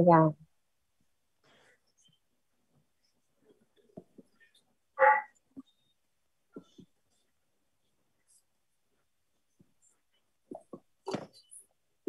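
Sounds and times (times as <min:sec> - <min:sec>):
dog bark: 0:05.0 - 0:05.4.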